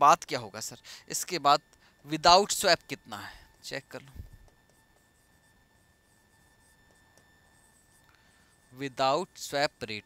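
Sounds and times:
stylus scratching on screen: 0:02.1 - 0:10.0.

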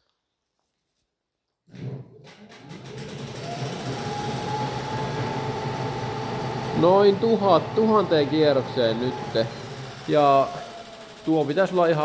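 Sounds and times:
electric motor whining: 0:02.8 - 0:12.0.

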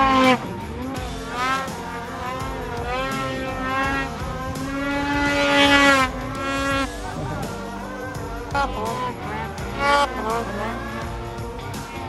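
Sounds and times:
snowmobile engine revving: 0:00.0 - 0:12.0.

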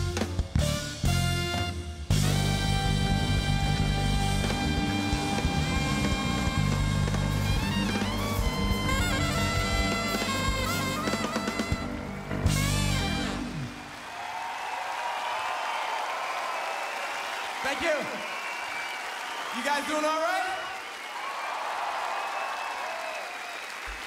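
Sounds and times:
jazz-funk band playing: 0:00.0 - 0:14.0
horns holding long notes: 0:00.0 - 0:14.4
crowd applauding and cheering: 0:02.2 - 0:24.0.

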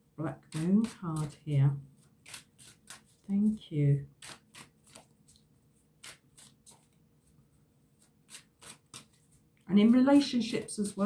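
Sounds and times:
cards being shuffled: 0:00.5 - 0:11.0.

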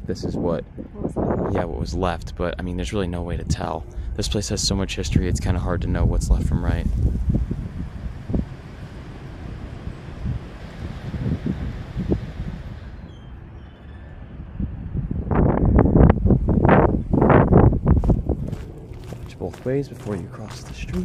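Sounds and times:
wind buffeting microphone: 0:00.0 - 0:21.0
footsteps crunching dry grass: 0:17.9 - 0:21.0.

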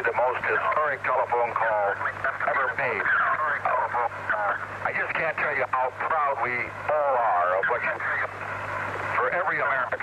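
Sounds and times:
man speaking over telephone: 0:00.0 - 0:08.4, 0:09.1 - 0:10.0
steady low hum: 0:00.0 - 0:10.0.

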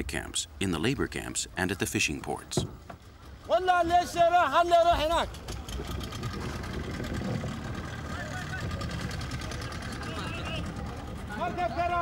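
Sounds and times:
boat engine running: 0:04.6 - 0:12.0.

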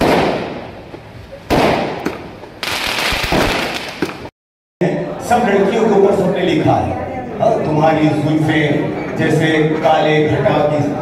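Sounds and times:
fireworks bangs with crackle: 0:00.0 - 0:00.9, 0:01.5 - 0:04.3.

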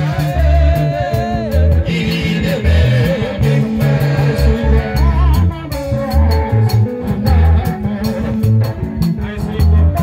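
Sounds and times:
bass line: 0:00.0 - 0:10.0
guitar: 0:00.0 - 0:10.0
keyboard: 0:00.0 - 0:10.0
man singing into microphone: 0:00.0 - 0:10.0.

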